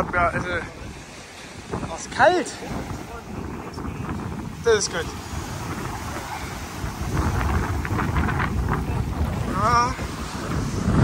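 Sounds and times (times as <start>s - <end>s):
small waves washing on sand: 0.0s - 11.0s
wind buffeting microphone: 0.0s - 11.0s.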